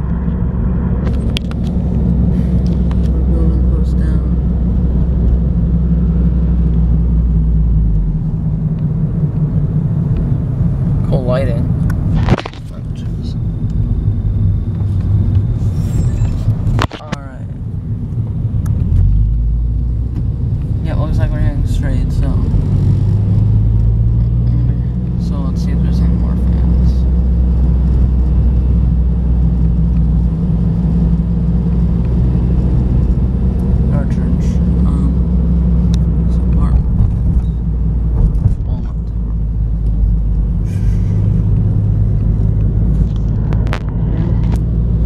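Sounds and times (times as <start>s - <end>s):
car engine and road rumble: 0.0s - 45.0s.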